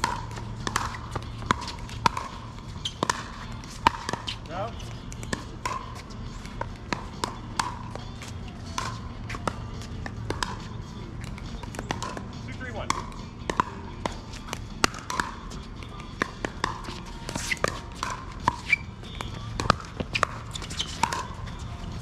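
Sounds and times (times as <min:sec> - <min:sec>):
paddles striking plastic ball: 0:00.0 - 0:04.4, 0:08.7 - 0:21.3.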